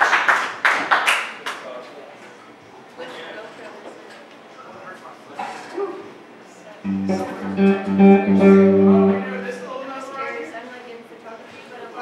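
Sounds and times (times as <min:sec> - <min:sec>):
crowd chatter: 0:06.9 - 0:10.0
electric guitar chord ringing: 0:06.9 - 0:10.0.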